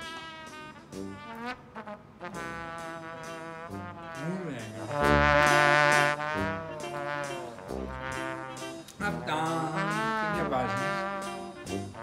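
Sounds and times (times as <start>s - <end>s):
comic brass music: 0.0s - 12.0s.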